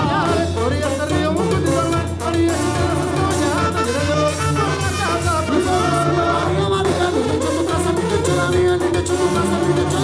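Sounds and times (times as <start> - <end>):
brass band playing: 0.0 - 10.0
men singing: 0.0 - 10.0.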